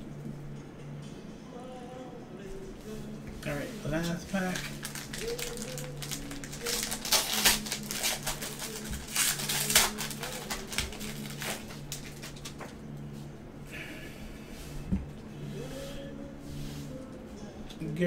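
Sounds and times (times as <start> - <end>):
low steady hum: 0.0 - 18.0
foil wrapper crinkling and tearing: 4.0 - 12.7.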